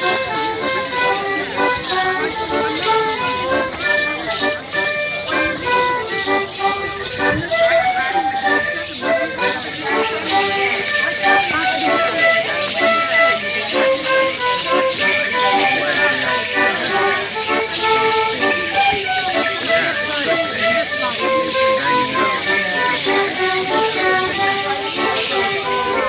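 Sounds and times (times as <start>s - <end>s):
bells jingling on dancers' shins: 0.0s - 26.0s
fiddle playing folk dance tune: 0.0s - 26.0s.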